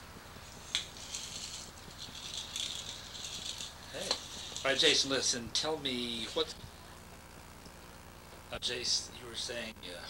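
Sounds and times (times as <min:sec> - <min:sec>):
soft irregular rattling: 0:00.2 - 0:08.0.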